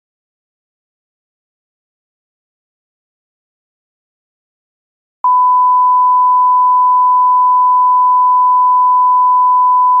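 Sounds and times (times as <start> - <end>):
steady reference tone beep: 5.2 - 10.0.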